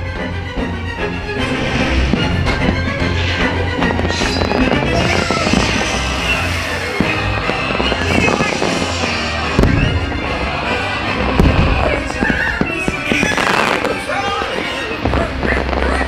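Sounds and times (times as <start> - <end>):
loud soundtrack music: 0.0 - 16.0
fireworks bangs: 1.5 - 16.0.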